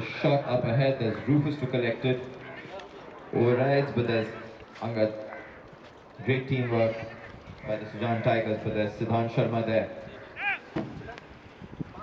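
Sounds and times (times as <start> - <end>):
hooves galloping on grass: 1.4 - 12.0.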